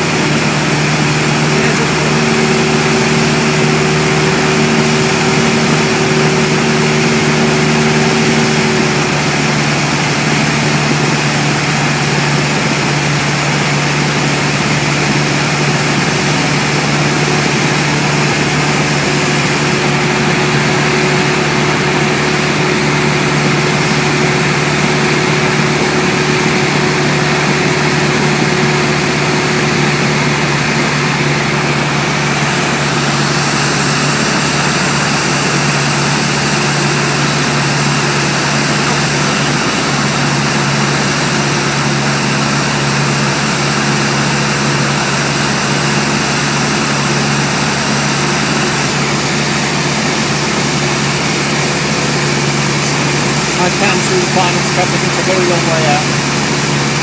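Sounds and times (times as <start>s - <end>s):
light aircraft engine drone: 0.0s - 57.0s.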